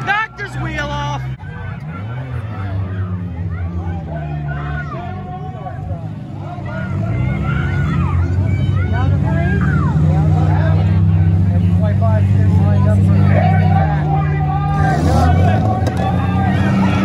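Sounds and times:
car engines running steadily: 0:00.0 - 0:17.0
crowd chatter: 0:00.0 - 0:17.0.

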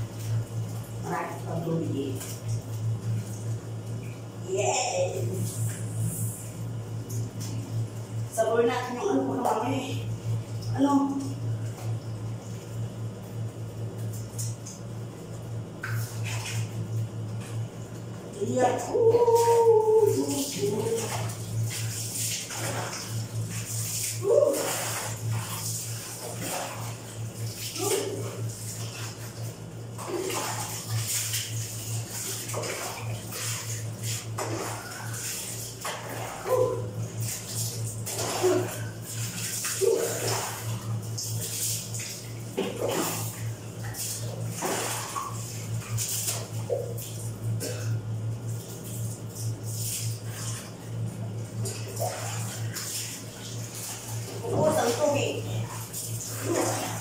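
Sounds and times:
water splashing on tiled floor: 0:00.0 - 0:06.4, 0:07.0 - 0:57.0
low hum: 0:00.0 - 0:57.0.

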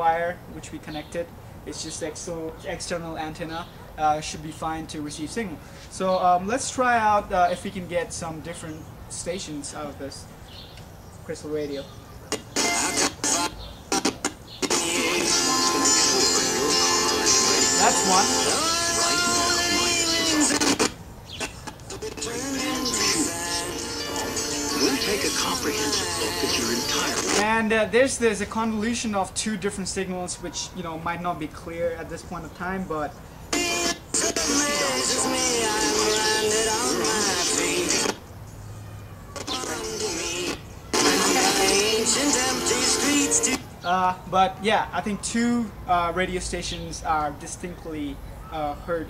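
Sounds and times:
radio music with singing: 0:12.3 - 0:27.7, 0:33.5 - 0:38.2, 0:39.4 - 0:43.7
talking voice on radio: 0:16.6 - 0:27.8, 0:33.5 - 0:38.1, 0:39.4 - 0:44.3.

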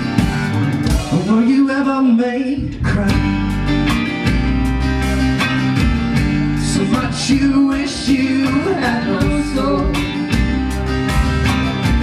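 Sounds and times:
blues-rock band playing: 0:00.0 - 0:12.0.

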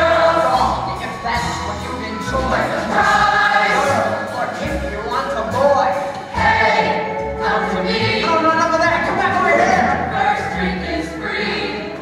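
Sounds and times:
ensemble singing in chorus: 0:00.0 - 0:05.2, 0:06.0 - 0:12.0
instrumental accompaniment: 0:00.0 - 0:12.0.

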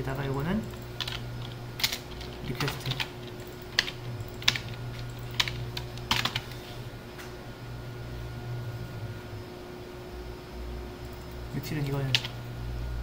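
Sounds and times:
steady low hum: 0:00.0 - 0:13.0
computer keyboard key presses: 0:00.7 - 0:06.5.

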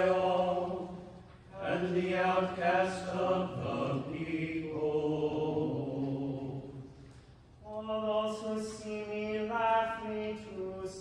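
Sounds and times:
church choir singing: 0:00.0 - 0:07.0.

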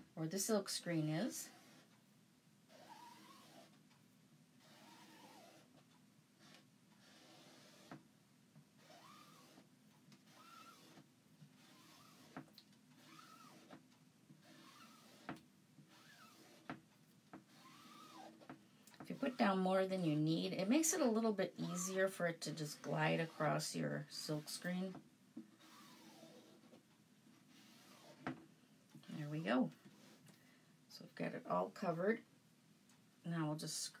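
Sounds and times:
squeegee squeaks: 0:08.8 - 0:09.6, 0:10.2 - 0:11.0, 0:11.6 - 0:13.8, 0:14.4 - 0:16.8, 0:17.5 - 0:18.5
squeegee scraping: 0:08.8 - 0:13.8, 0:14.4 - 0:16.8, 0:17.4 - 0:25.0, 0:25.6 - 0:26.8.

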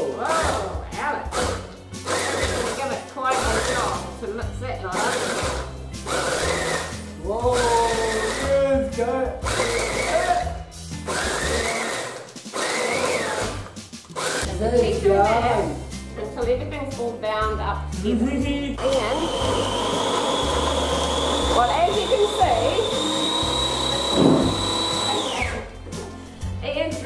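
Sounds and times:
food processor chopping in bursts: 0:00.2 - 0:04.1, 0:05.0 - 0:08.6, 0:09.4 - 0:14.6, 0:18.8 - 0:25.6.

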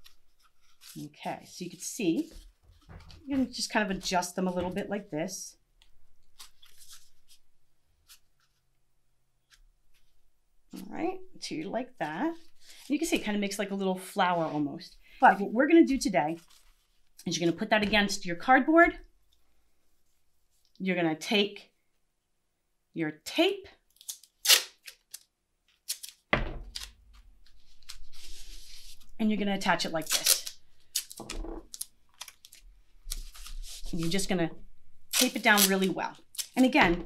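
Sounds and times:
masking tape ripping: 0:23.9 - 0:27.0, 0:30.0 - 0:33.6, 0:35.1 - 0:36.8
tape crackling: 0:23.9 - 0:29.1, 0:30.0 - 0:34.3, 0:35.1 - 0:37.0
cardboard tube crackling: 0:30.0 - 0:34.3.

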